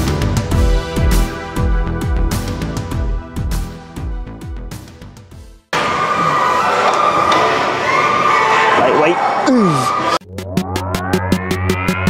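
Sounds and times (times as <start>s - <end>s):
background music: 0.0s - 5.7s
electronic music with steady beat: 10.2s - 12.0s.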